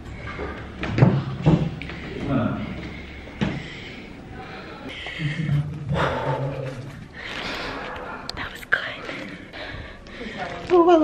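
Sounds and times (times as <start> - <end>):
woman whispering: 8.2 - 9.6.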